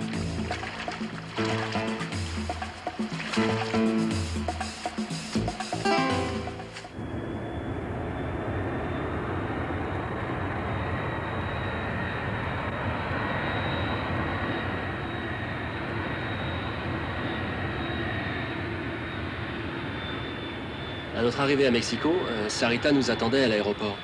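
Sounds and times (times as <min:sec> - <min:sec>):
jet engines running: 0:00.0 - 0:24.0.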